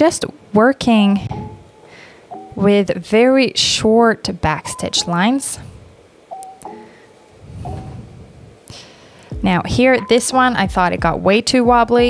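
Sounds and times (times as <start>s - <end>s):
faint breath: 1.5s - 2.4s, 6.7s - 9.4s.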